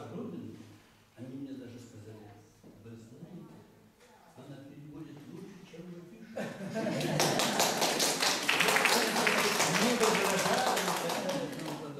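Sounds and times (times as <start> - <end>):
audience applauding: 7.0 - 11.9.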